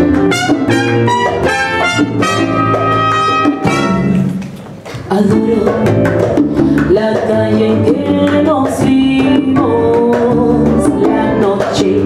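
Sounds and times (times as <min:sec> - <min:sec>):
electric bass: 0:00.0 - 0:04.4, 0:05.2 - 0:12.0
hand percussion: 0:00.0 - 0:12.0
piano: 0:00.0 - 0:12.0
woman singing: 0:05.0 - 0:12.0.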